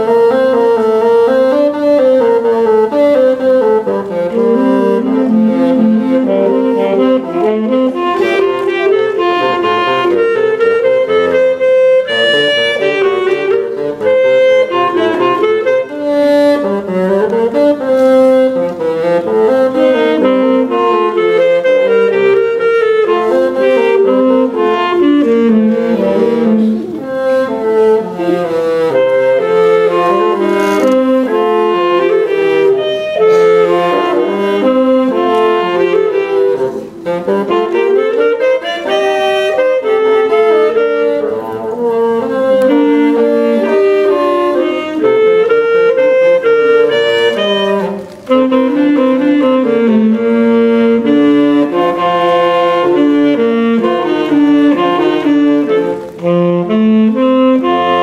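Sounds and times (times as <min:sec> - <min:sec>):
bassoon: 0:00.0 - 0:58.0
saxophone: 0:00.0 - 0:58.0.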